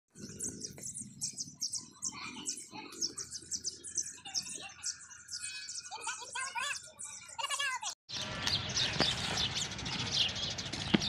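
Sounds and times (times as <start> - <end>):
birds chirping: 0.1 - 11.0.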